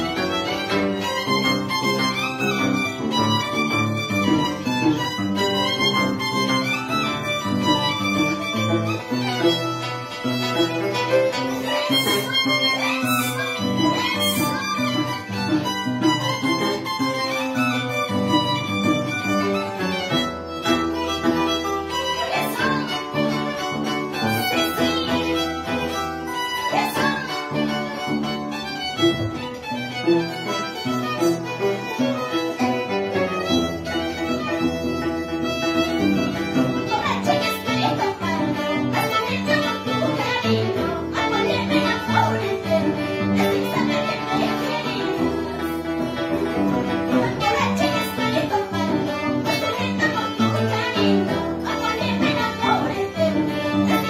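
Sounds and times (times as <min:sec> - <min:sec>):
plucked harp: 0:00.0 - 0:54.0
violin melody: 0:00.0 - 0:54.0.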